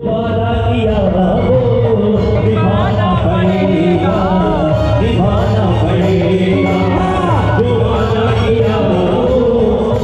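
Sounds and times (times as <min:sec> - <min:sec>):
keyboard accompaniment: 0:00.0 - 0:10.0
tabla: 0:00.0 - 0:10.0.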